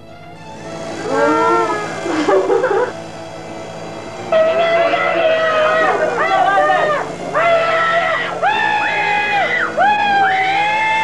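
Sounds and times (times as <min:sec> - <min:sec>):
muffled moaning cry: 0:01.0 - 0:03.0, 0:04.3 - 0:11.0.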